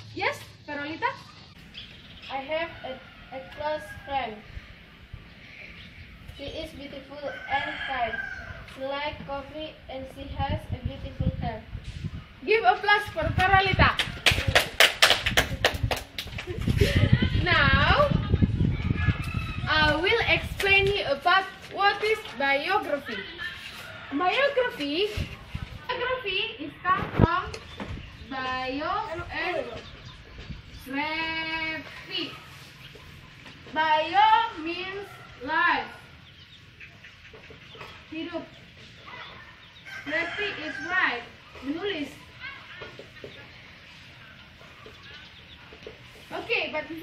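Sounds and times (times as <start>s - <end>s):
people clapping: 13.9s - 16.7s
chickens clucking: 27.0s - 47.0s.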